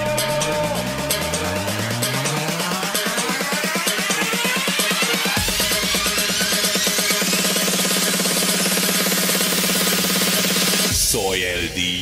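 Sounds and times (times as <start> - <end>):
electro dance track: 0.0 - 12.0.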